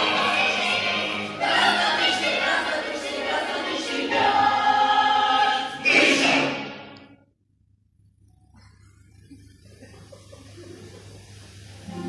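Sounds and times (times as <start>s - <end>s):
children's choir singing: 0.0s - 7.0s.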